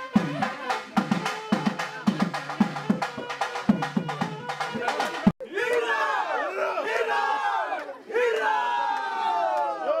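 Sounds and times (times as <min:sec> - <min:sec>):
crowd cheering and shouting: 0:04.8 - 0:10.0.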